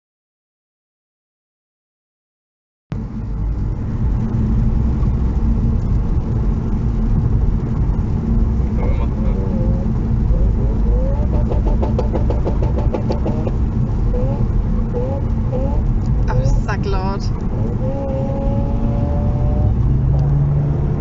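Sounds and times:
car engine and road rumble: 0:02.9 - 0:21.0
person speaking: 0:16.2 - 0:17.4.

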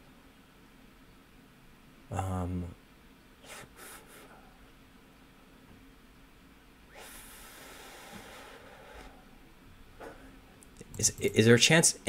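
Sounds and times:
person breathing out: 0:06.9 - 0:09.3.

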